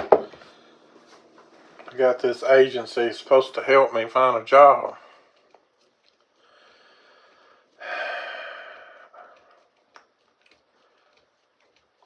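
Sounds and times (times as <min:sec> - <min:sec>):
man breathing in softly: 0:06.4 - 0:09.6.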